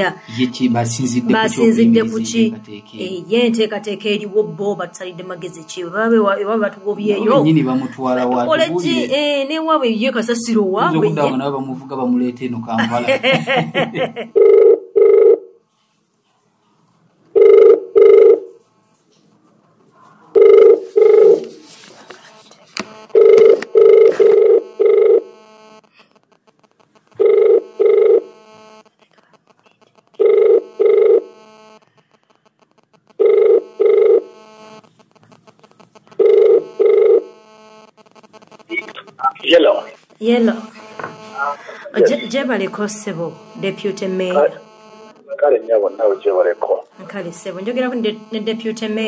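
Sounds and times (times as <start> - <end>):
telephone ringback tone: 14.4 - 15.4, 17.4 - 18.6, 20.4 - 21.5, 23.0 - 25.7, 27.2 - 28.4, 30.2 - 31.8, 33.1 - 34.8, 36.1 - 37.9.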